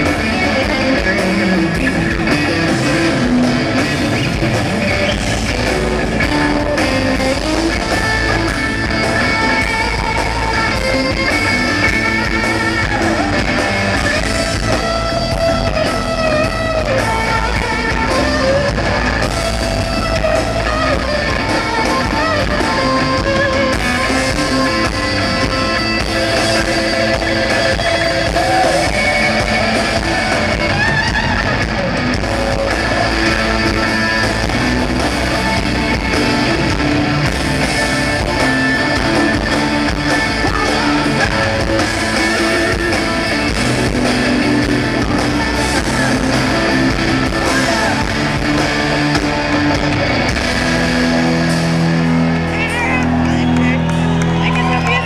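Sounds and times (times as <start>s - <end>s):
electric guitar: 0.0s - 55.0s
live rock band playing: 0.0s - 55.0s.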